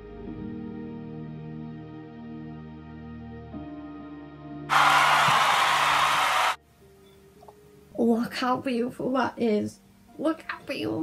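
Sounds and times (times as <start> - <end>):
soft background music: 0.0 - 4.7, 6.6 - 11.0.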